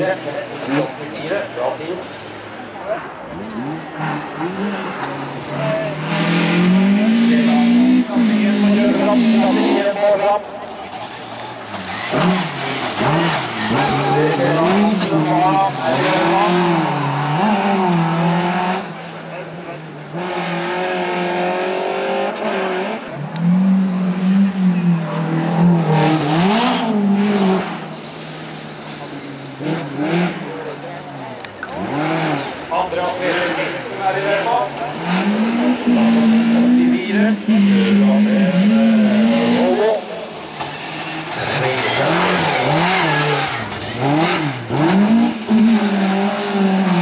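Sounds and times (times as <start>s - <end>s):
race car engines revving: 0.0s - 47.0s.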